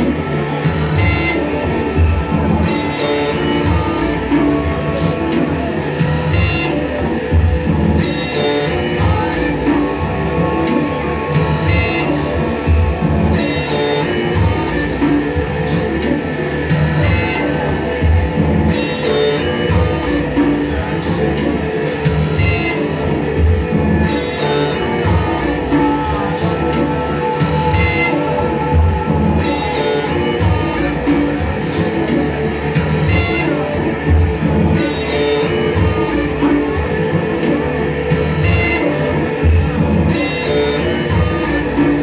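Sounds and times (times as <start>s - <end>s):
live band music: 0.0s - 42.0s
pulsing bass: 0.0s - 42.0s.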